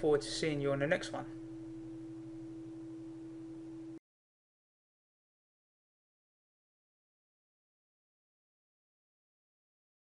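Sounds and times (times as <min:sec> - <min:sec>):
low two-tone hum: 0:00.0 - 0:04.0.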